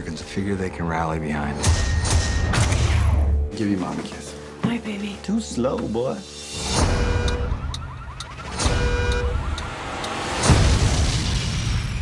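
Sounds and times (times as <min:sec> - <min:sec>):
car alarm chirping: 0:06.6 - 0:10.6
deep booming explosions: 0:10.4 - 0:12.0.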